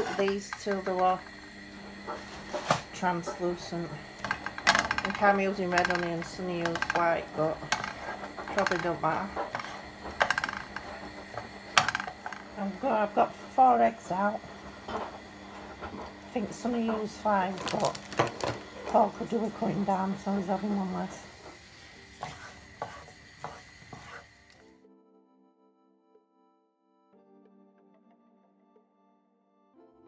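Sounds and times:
wooden spoon scraping a frying pan: 0.0s - 1.3s, 2.0s - 24.6s.

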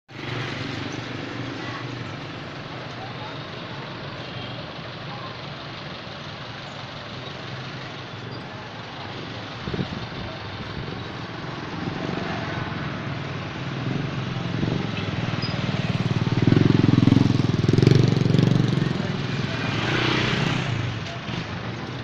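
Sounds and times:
road noise: 0.1s - 22.0s
vehicle engine running: 0.1s - 22.0s.

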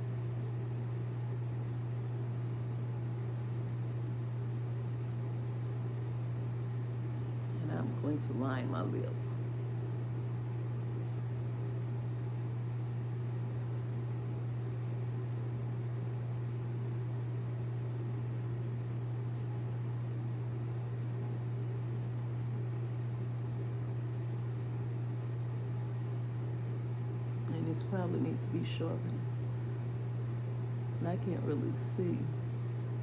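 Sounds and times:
low machine hum: 0.0s - 33.0s.

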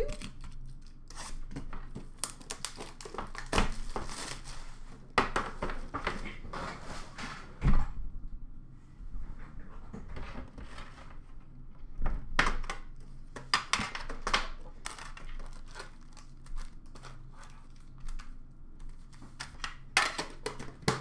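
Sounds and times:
foil wrappers crinkling: 0.0s - 4.8s, 13.9s - 18.3s
cards and packaging rustling: 0.0s - 6.2s, 13.2s - 21.0s.

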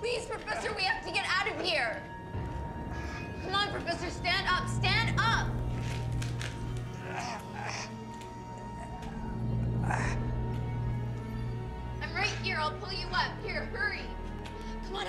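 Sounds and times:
film score with low drone: 0.0s - 15.0s.

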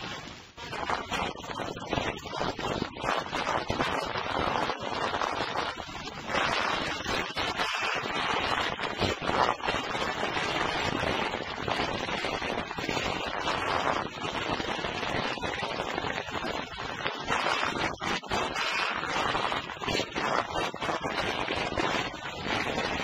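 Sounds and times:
record hiss: 0.0s - 23.0s.

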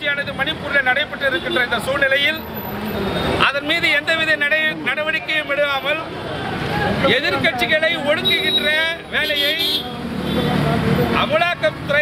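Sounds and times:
man speaking forcefully: 0.0s - 2.5s, 3.4s - 6.2s, 6.9s - 12.0s
low rumble of road traffic: 0.0s - 12.0s.

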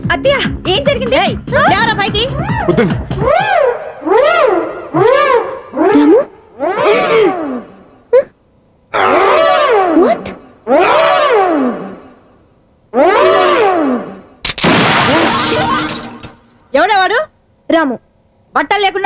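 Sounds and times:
long wailing cries: 2.4s - 7.9s, 8.9s - 12.2s, 12.9s - 14.3s.

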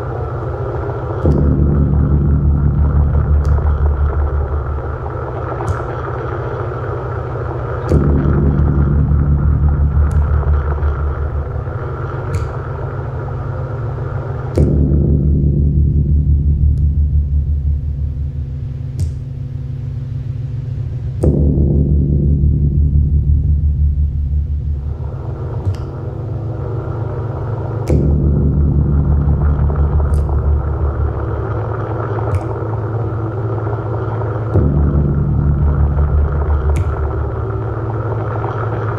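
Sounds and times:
low droning synthesizer chord: 0.0s - 38.9s.

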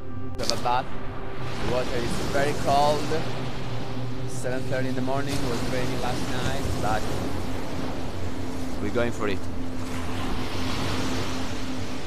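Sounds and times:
waves breaking on beach: 0.4s - 12.0s.

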